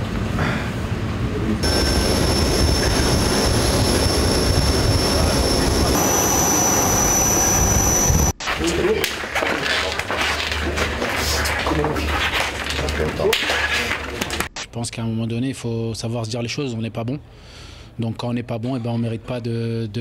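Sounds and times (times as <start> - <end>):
aircraft turbine engine whine: 1.6 - 8.4.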